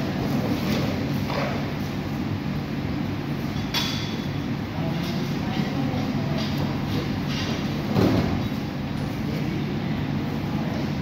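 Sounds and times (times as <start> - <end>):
low rumble of training hall: 0.0 - 11.0.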